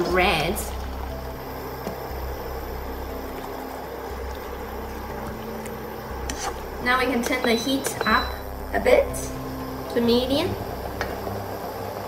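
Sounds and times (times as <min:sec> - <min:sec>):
low hum: 0:00.0 - 0:12.0
sauce simmering in a wok: 0:00.3 - 0:06.9
spatula stirring: 0:00.4 - 0:08.3.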